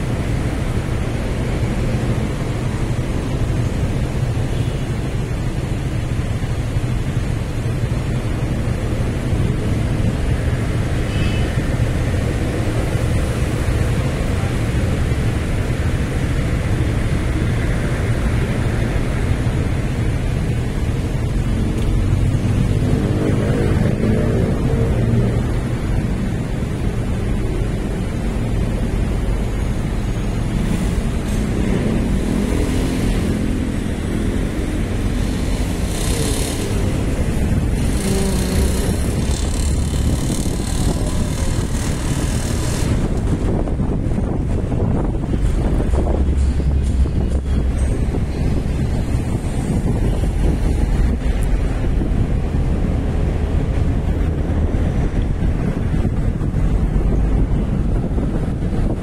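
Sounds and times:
rumble of engines and tyres: 0:00.0 - 0:59.0
wind on microphone: 0:00.0 - 0:59.0.

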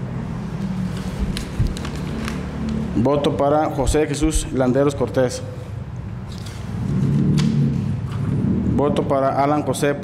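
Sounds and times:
paper rustling: 0:00.8 - 0:02.8.

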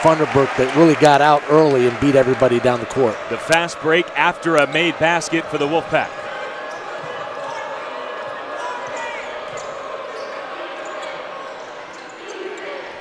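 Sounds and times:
crowd murmur: 0:00.0 - 0:13.0
sneaker squeaks: 0:06.6 - 0:07.8, 0:08.5 - 0:13.0.

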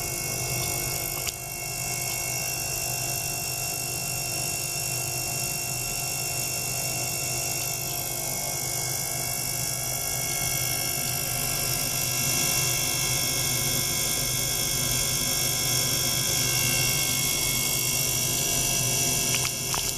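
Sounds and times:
ultrasonic bath buzzing hiss: 0:00.0 - 0:19.9.

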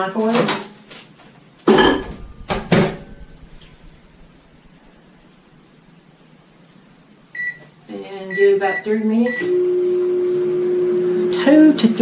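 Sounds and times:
microwave keypad beep: 0:07.4 - 0:07.6, 0:08.3 - 0:10.0.

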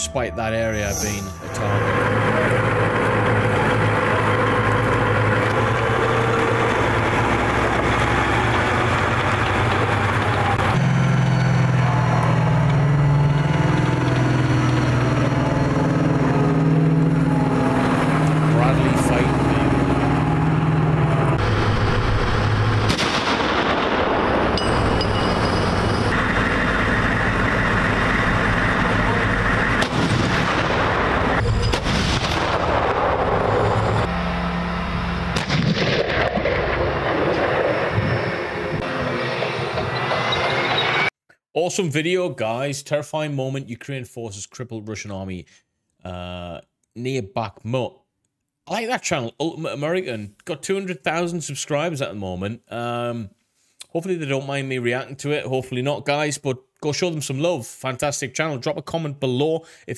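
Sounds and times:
tracked vehicle engines running: 0:00.0 - 0:41.1
blasts: 0:00.7 - 0:41.1
gunfire: 0:22.8 - 0:24.6, 0:29.8 - 0:33.4, 0:35.4 - 0:37.8.

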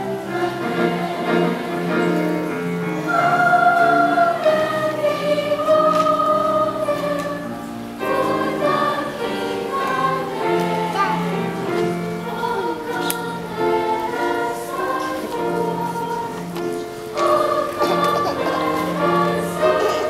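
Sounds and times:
children's choir singing: 0:00.0 - 0:20.0.

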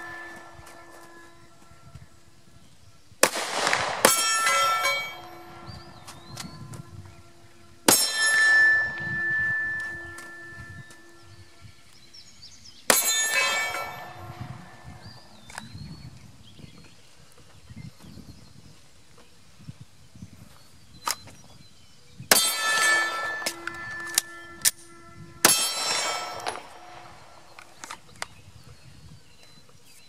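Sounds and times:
steel target ringing: 0:00.0 - 0:01.8, 0:03.2 - 0:11.6, 0:12.9 - 0:15.5, 0:22.3 - 0:27.8
pistol shots: 0:03.2 - 0:05.4, 0:25.4 - 0:27.6.

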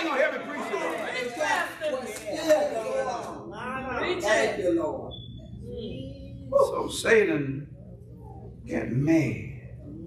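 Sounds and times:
several voices talking: 0:00.0 - 0:10.0
man preaching: 0:08.6 - 0:09.6.

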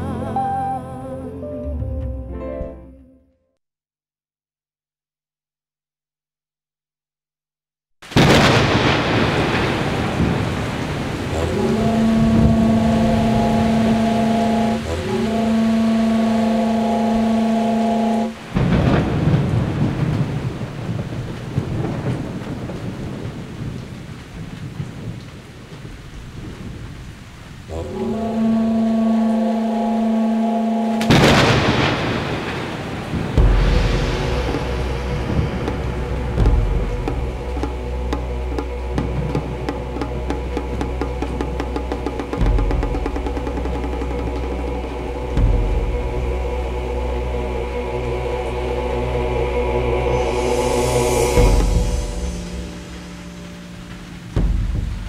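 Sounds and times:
loud thunder crack: 0:08.0 - 0:15.2, 0:18.3 - 0:27.0, 0:30.9 - 0:47.7, 0:50.0 - 0:55.0
rolling thunder: 0:08.0 - 0:17.5, 0:18.2 - 0:29.3, 0:30.9 - 0:55.0
rain: 0:08.0 - 0:55.0
deep bass line: 0:11.3 - 0:18.4, 0:33.4 - 0:55.0
held music chords: 0:11.3 - 0:18.4, 0:27.7 - 0:31.9, 0:33.4 - 0:55.0.

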